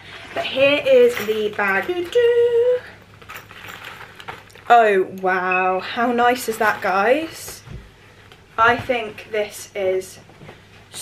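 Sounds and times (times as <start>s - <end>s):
nylon bag rustling: 1.0s - 4.8s.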